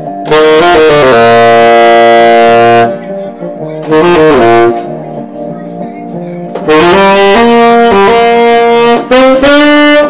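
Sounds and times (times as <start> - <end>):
tenor saxophone long note: 0.2 - 3.1, 3.8 - 4.8, 6.7 - 10.0.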